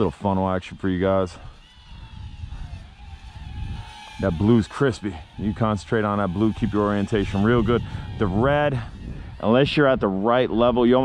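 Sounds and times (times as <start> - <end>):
drone propellers whining: 0.0 - 11.0
low rumble: 0.7 - 10.9.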